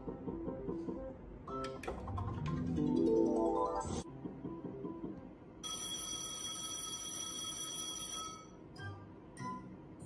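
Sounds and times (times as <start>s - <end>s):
faint machine music: 0.0s - 10.0s.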